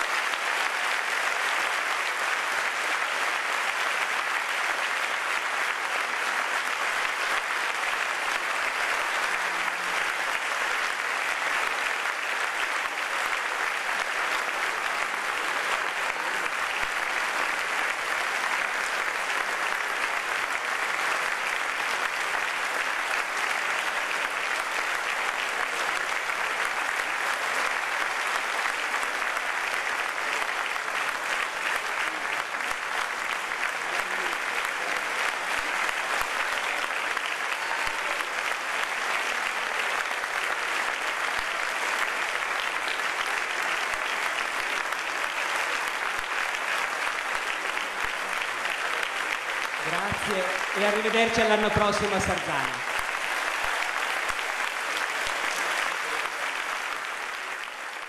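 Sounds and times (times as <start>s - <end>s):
large audience applauding: 0.0s - 58.0s.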